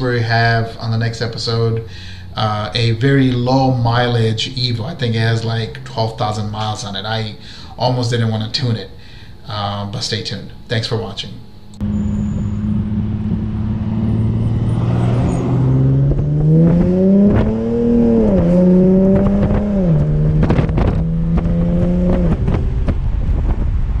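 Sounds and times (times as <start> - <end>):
car engine accelerating: 11.8 - 24.0.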